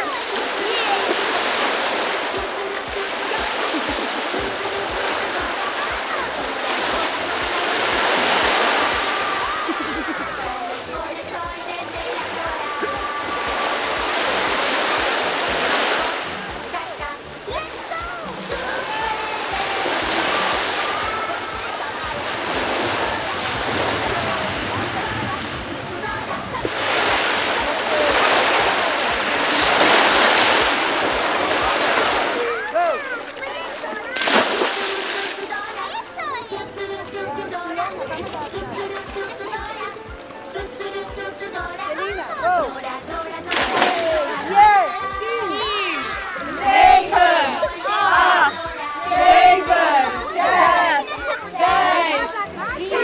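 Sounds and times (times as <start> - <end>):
small waves washing ashore: 0.0 - 53.0
loud splash into water: 26.5 - 32.7, 34.0 - 35.6, 43.5 - 44.5.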